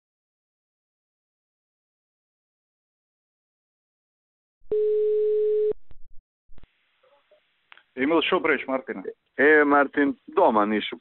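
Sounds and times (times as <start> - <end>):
telephone ringback tone: 4.7 - 5.8.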